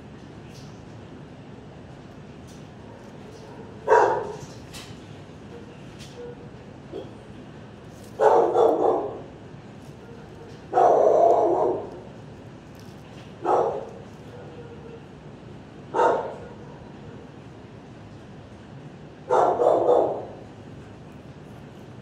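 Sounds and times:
dog barking: 0:02.8 - 0:04.4, 0:05.6 - 0:07.2, 0:08.2 - 0:09.3, 0:10.0 - 0:12.0, 0:13.4 - 0:15.1, 0:15.9 - 0:16.9, 0:19.3 - 0:20.4.

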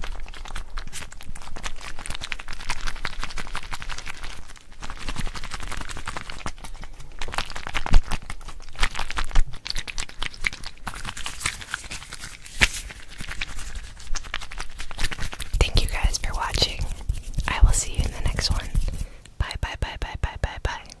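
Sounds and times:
close-miked whispering: 0:15.6 - 0:21.0.

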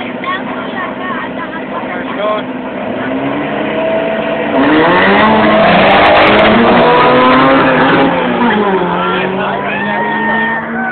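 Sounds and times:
car engine accelerating hard: 0:00.0 - 0:10.9
voices shouting: 0:08.2 - 0:10.9.

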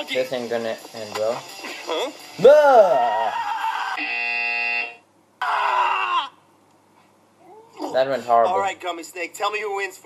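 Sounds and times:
harsh flat buzzer: 0:04.0 - 0:05.0.

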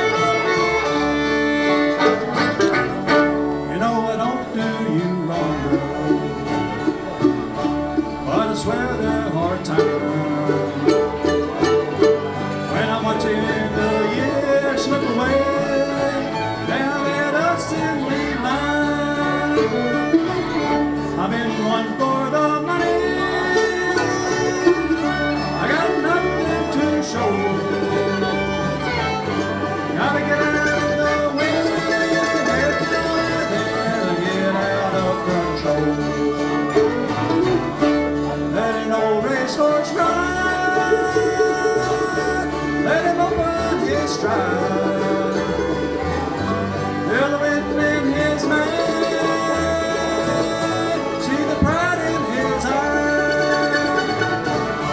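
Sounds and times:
acoustic guitar: 0:00.0 - 0:54.9
bowed fiddle: 0:00.0 - 0:54.9
upright bass: 0:00.0 - 0:54.9.

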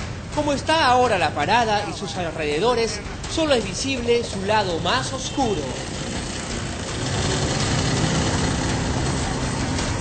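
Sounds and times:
cars driving past: 0:04.3 - 0:10.0.

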